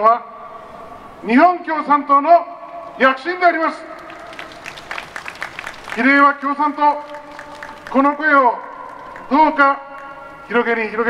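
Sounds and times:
crowd applauding: 3.8 - 10.4.

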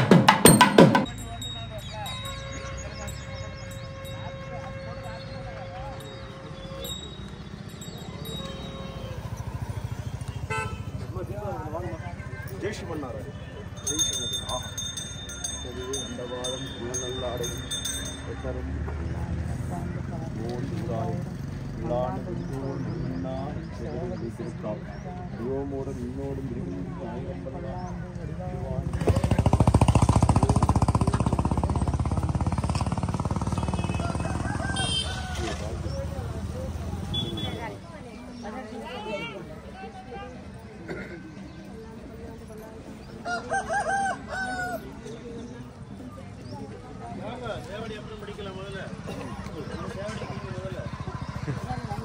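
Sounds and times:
vehicle engine running: 5.9 - 13.9, 28.5 - 37.6, 48.2 - 52.0
engine running: 28.8 - 37.5.

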